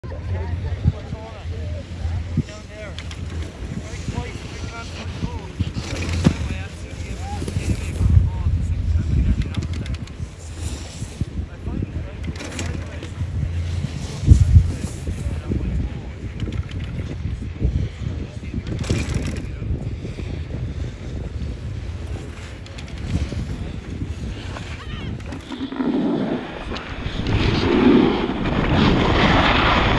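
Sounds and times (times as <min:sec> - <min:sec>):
voices talking: 0:00.0 - 0:16.4, 0:22.4 - 0:26.9
wind buffeting microphone: 0:00.0 - 0:29.9.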